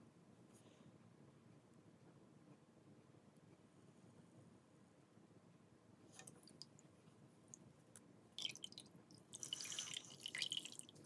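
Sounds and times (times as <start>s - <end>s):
water dripping from squeezed foam: 6.2s - 11.0s.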